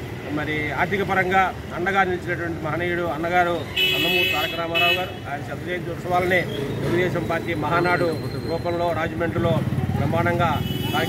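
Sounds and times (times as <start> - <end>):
man speaking into microphone: 0.2 - 11.0.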